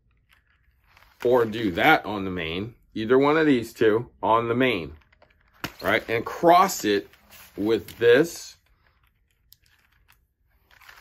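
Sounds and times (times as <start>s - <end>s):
packets rustling: 0.1s - 2.0s, 4.7s - 11.0s.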